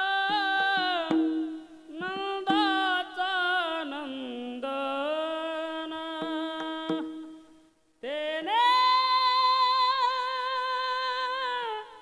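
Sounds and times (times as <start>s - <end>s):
man singing long held notes: 0.0s - 7.2s
sharp percussion strikes: 0.8s - 2.9s, 6.8s - 7.5s.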